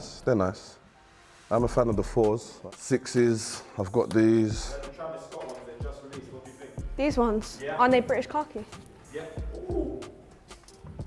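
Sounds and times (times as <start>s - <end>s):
person humming approval: 9.5s - 10.2s.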